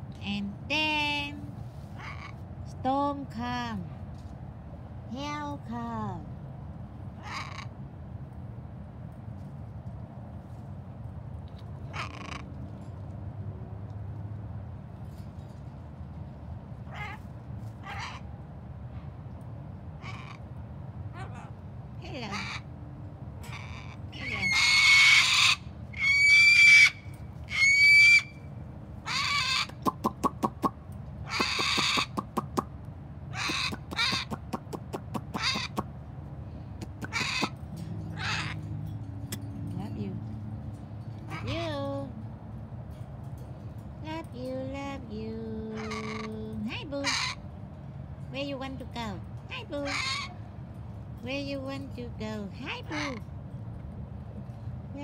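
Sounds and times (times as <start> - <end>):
birds calling: 23.4 - 32.7, 33.3 - 35.9, 36.6 - 39.4
harsh bird calls: 23.5 - 32.6, 36.8 - 38.7.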